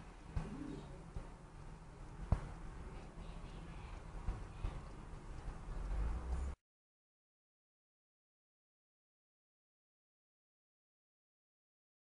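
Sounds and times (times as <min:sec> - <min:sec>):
faint low rumble: 0:00.0 - 0:06.6
bird cooing: 0:00.4 - 0:01.0.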